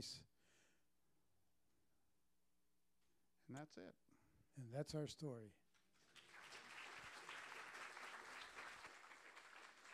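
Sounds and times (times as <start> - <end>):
audience applauding: 5.9 - 9.9.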